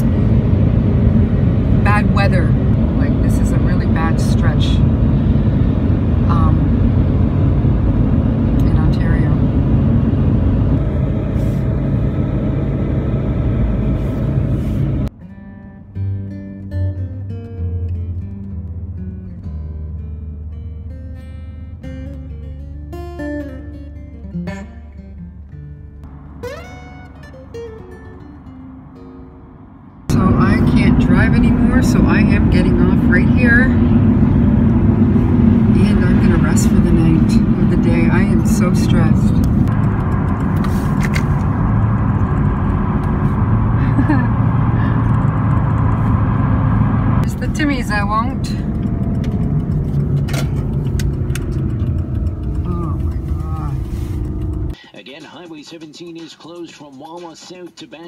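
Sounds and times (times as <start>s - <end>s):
engine and road rumble in van: 0.0s - 54.9s
acoustic guitar music: 13.4s - 58.0s.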